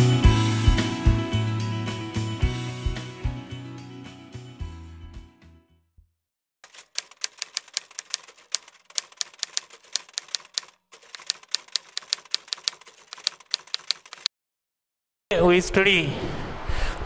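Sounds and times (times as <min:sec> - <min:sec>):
typewriter key clicks: 0:06.7 - 0:14.3.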